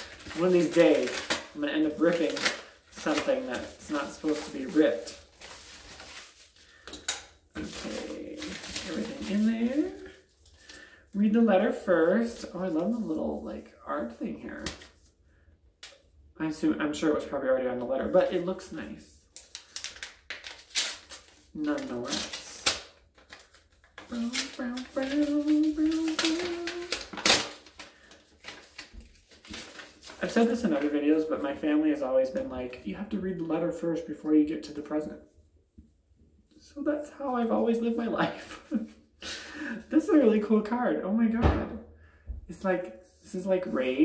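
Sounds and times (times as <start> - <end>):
paper and packaging rustling: 0.0 - 15.1, 19.3 - 32.8.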